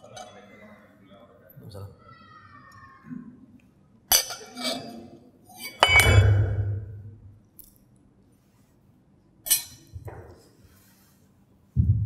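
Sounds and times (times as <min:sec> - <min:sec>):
glass clinking on a table: 0:05.6 - 0:06.7.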